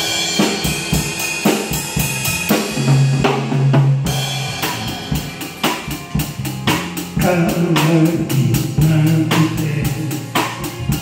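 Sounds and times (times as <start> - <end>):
drum kit played with sticks: 0.0 - 11.0
karaoke backing track: 0.0 - 11.0.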